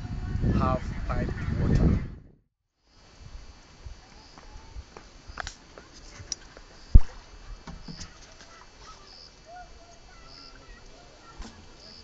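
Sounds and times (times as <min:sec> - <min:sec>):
faint chirps: 0:04.0 - 0:12.0.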